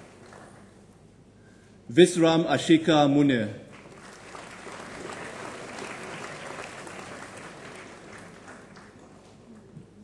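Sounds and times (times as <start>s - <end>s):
audience applauding: 3.7s - 9.7s.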